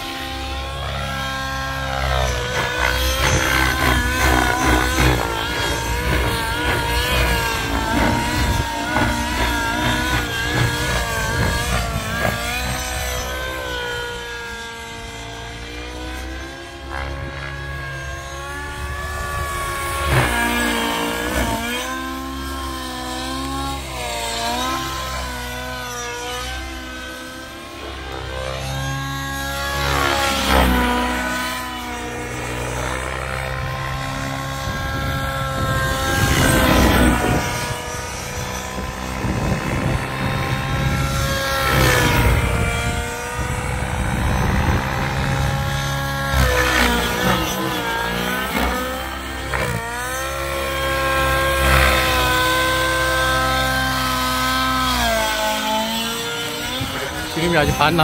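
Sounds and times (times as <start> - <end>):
helicopter rushing past: 0.0 - 58.0
model helicopter engine and rotor: 0.0 - 58.0.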